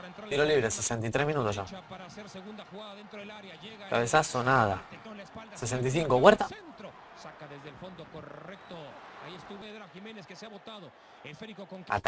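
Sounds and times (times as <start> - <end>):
man talking on television: 0.0 - 12.0.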